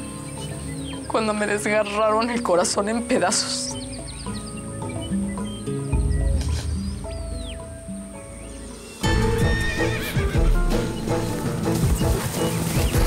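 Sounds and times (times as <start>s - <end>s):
dramatic score music: 3.8s - 13.0s
hooves clopping: 9.1s - 13.0s
horses neighing: 9.1s - 13.0s.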